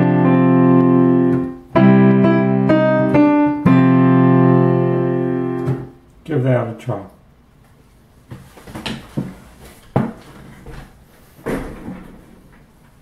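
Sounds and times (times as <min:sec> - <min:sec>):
knocks and clunks: 0:10.0 - 0:13.0.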